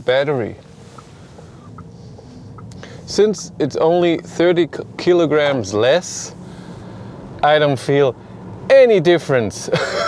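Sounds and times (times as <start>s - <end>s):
road and tyre rumble: 0.0s - 10.0s.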